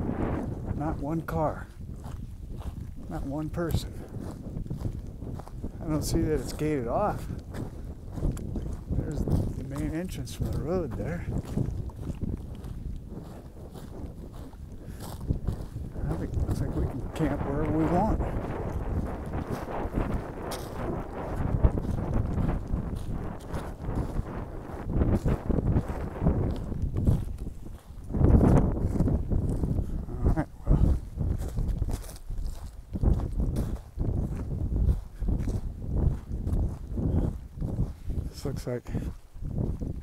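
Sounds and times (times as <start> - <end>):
footsteps on dirt and pine needles: 0.0 - 40.0
wind buffeting microphone: 0.0 - 40.0.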